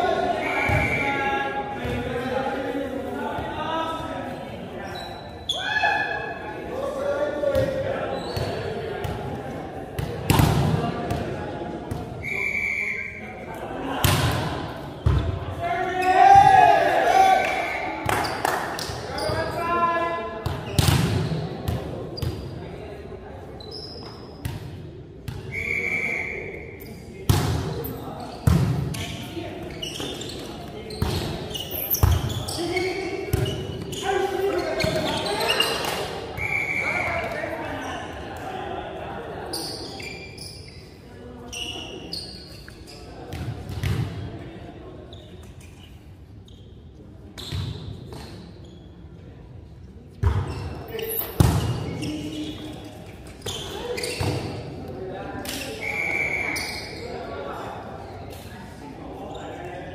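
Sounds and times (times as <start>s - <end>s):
players shouting calls: 0.0s - 2.3s
shoe squeaks on floor: 4.8s - 5.7s, 8.1s - 8.7s, 23.6s - 24.5s, 27.8s - 38.1s, 39.5s - 44.0s, 45.0s - 49.0s, 50.2s - 54.8s, 55.5s - 57.3s.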